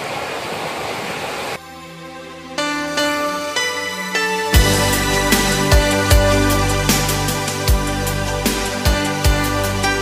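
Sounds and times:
soft music with sustained notes: 0:01.6 - 0:10.0.

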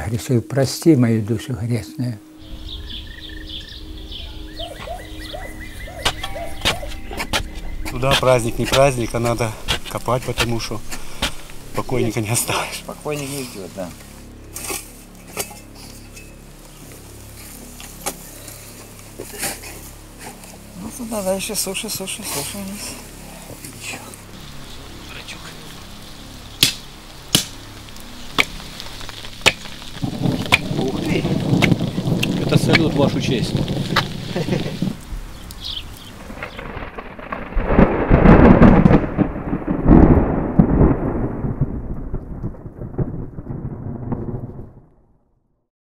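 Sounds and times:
steady low background: 0:00.0 - 0:45.4
thunder rumble: 0:02.4 - 0:12.8, 0:24.2 - 0:45.4
shovel scraping earth: 0:06.0 - 0:12.1, 0:14.5 - 0:16.3.

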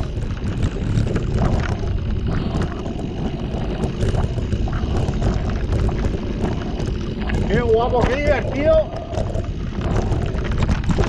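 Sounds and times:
bike rattling over rocks: 0:00.0 - 0:11.0
bike tyres rumbling on dirt: 0:00.0 - 0:11.0
wind buffeting microphone: 0:00.0 - 0:11.0.

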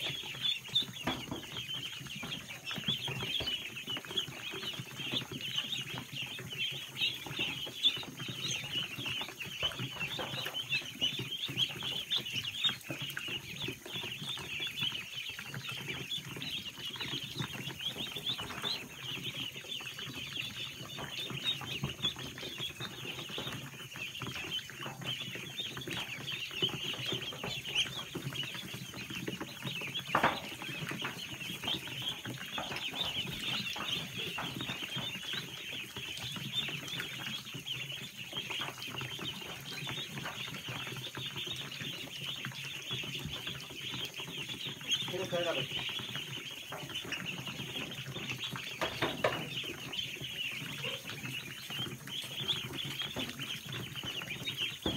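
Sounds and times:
ducklings peeping: 0:00.0 - 0:54.9.

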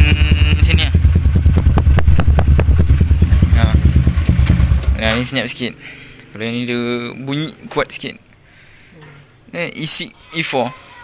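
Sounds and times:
motorcycle engine idling: 0:00.0 - 0:05.3.

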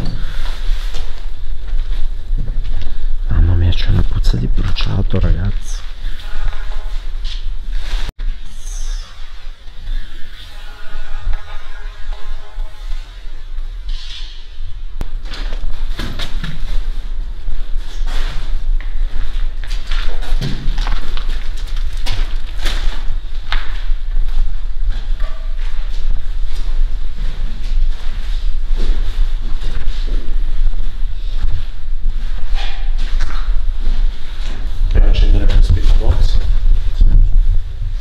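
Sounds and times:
low rumble of handheld camera: 0:00.0 - 0:10.4, 0:12.7 - 0:38.0.

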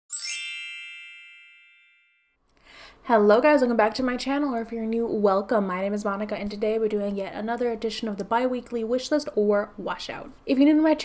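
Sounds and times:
bright chime ringing: 0:00.1 - 0:02.3.

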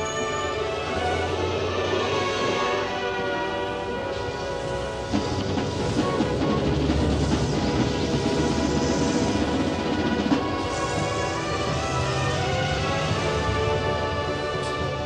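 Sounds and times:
brass chords: 0:00.0 - 0:15.0
drums: 0:00.0 - 0:15.0.

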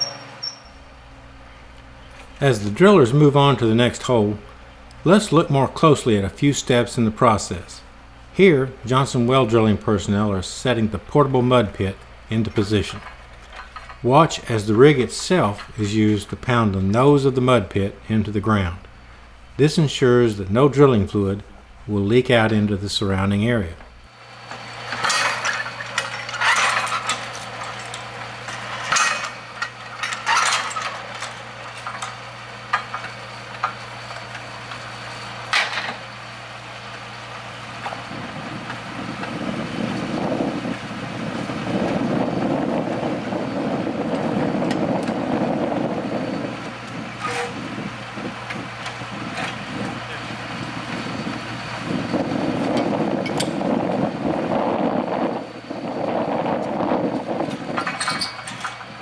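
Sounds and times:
drilling rig engine humming: 0:00.0 - 0:59.0.

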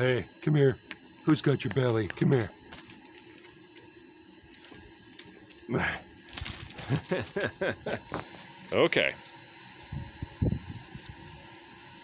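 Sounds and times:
thin high tone: 0:00.0 - 0:12.0.

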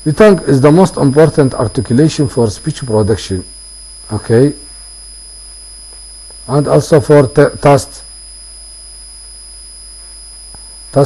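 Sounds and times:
high-pitched electrical whine: 0:00.0 - 0:11.0
low electrical hum: 0:00.0 - 0:11.0.

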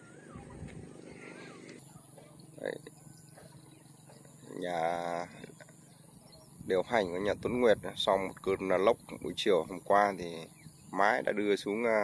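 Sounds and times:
faint outdoor background noise: 0:00.0 - 0:12.0
faint warbling chirps: 0:00.0 - 0:12.0.

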